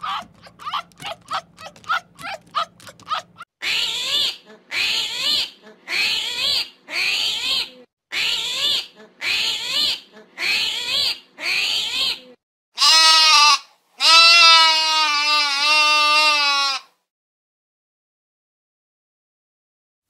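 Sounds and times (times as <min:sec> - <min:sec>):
fox yipping: 0:00.0 - 0:12.2
armadillo squealing grunts: 0:00.0 - 0:12.3.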